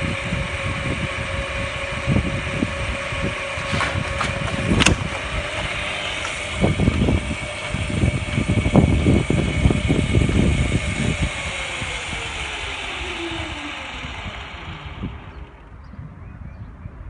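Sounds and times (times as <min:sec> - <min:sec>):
mechanical lure motor whine: 0:00.0 - 0:15.8
low rumbles: 0:00.0 - 0:17.0.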